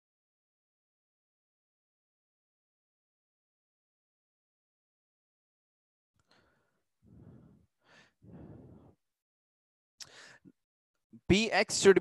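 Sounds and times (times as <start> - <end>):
faint breathing: 6.2 - 9.1, 10.0 - 10.6.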